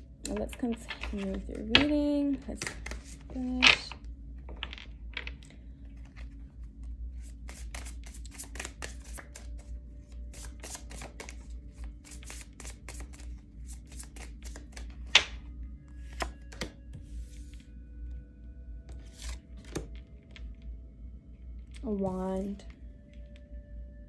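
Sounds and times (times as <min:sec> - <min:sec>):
cards being shuffled: 0:00.3 - 0:15.4, 0:16.0 - 0:17.6, 0:18.9 - 0:20.5.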